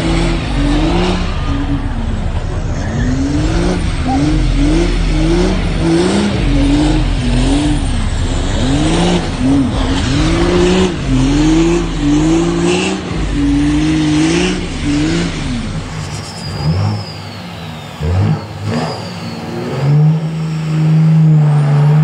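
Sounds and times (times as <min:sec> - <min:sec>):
diesel engine revving high: 0:00.0 - 0:22.0
high whistle falling in pitch: 0:13.8 - 0:21.3.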